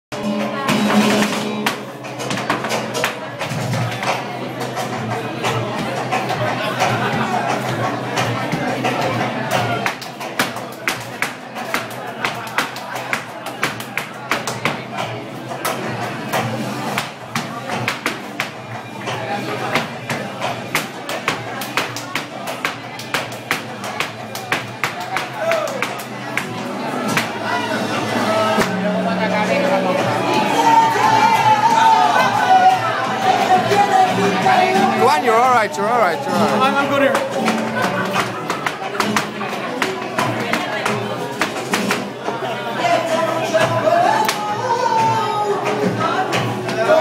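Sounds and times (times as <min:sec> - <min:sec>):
sharp rhythmic percussion strikes: 0:00.1 - 0:29.1, 0:29.8 - 0:42.5
flamenco music: 0:00.1 - 0:47.0
voices: 0:23.9 - 0:47.0.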